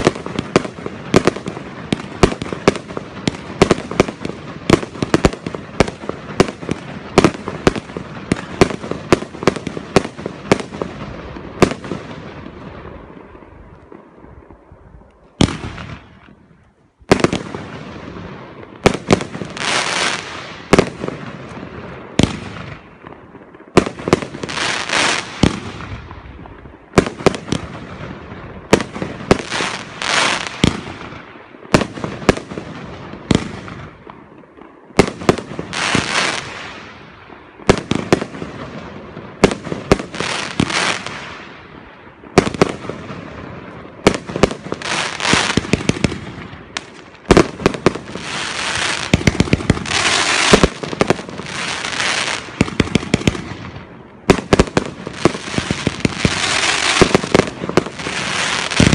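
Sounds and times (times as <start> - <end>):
firework bangs: 0.0 - 14.7, 15.3 - 58.9
fireworks stars hissing and crackling: 0.0 - 58.9.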